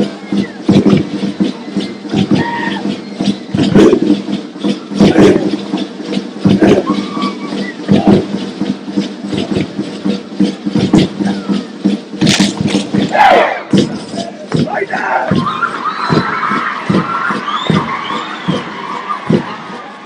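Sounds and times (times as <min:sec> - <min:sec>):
heavy percussive beats: 0:00.0 - 0:20.0
group voices calling out: 0:13.1 - 0:13.8, 0:14.6 - 0:20.0.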